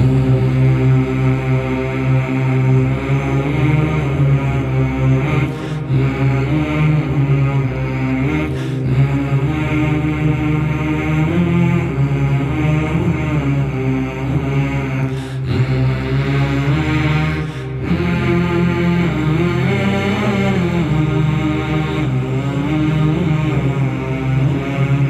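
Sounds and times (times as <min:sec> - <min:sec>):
chant sung: 0:00.0 - 0:25.0
steady low drone: 0:00.0 - 0:25.0.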